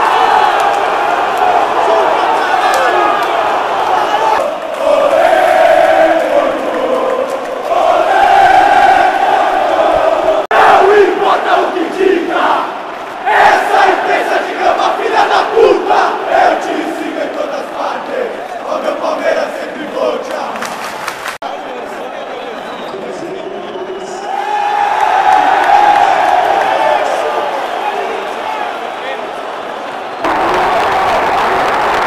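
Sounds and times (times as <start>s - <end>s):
stadium crowd singing and chanting: 0.0s - 32.0s.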